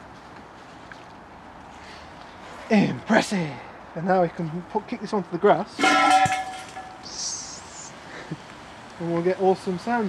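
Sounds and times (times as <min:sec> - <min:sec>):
hot metal hissing on grass: 0:07.0 - 0:10.0.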